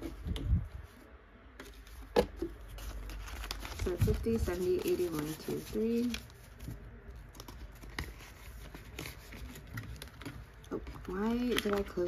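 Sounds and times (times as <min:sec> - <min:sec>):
banknotes rustling: 0:01.6 - 0:12.0.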